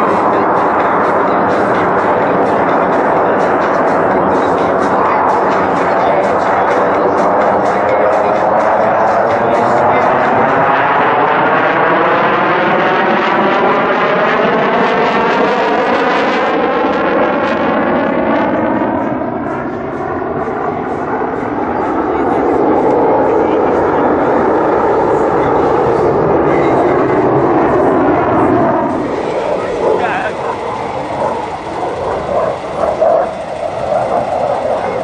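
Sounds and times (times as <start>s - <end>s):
fighter jet afterburner roar: 0.0s - 35.0s.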